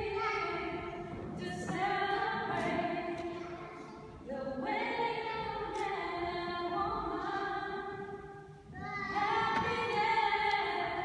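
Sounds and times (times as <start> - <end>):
unaccompanied singing in a church: 0.0 - 11.0.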